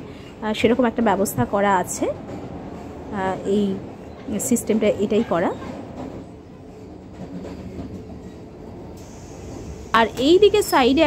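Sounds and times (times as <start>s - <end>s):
train running rumble inside coach: 0.0s - 11.0s.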